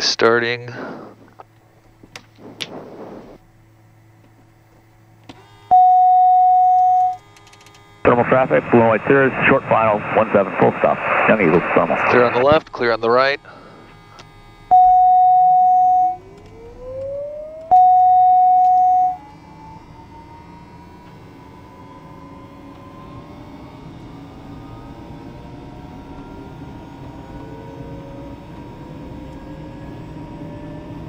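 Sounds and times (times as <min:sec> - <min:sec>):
long steady tones: 0:00.0 - 0:31.0
turboprop engine whine spooling up: 0:00.0 - 0:31.0.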